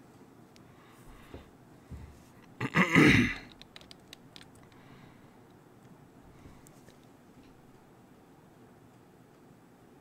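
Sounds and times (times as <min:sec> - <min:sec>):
man clearing throat: 0:02.6 - 0:03.5.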